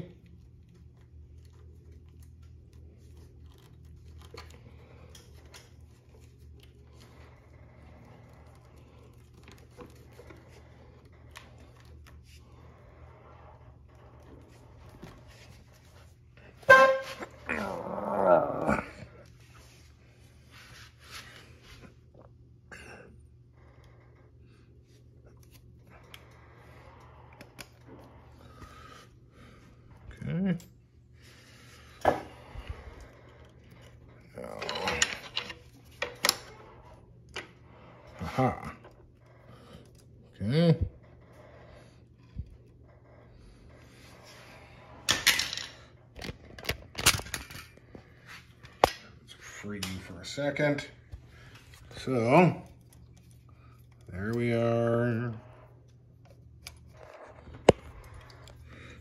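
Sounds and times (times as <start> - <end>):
steady low hum: 0.0 - 59.0.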